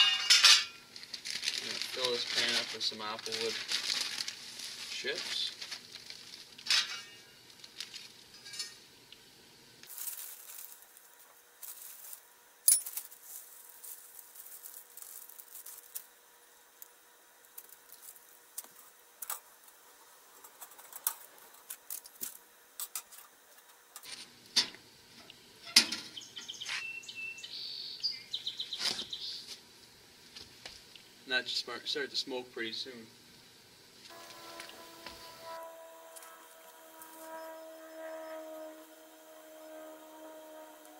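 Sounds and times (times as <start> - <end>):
wood chips rattling into metal pan: 0.0 - 5.5, 9.9 - 10.9, 11.6 - 16.0.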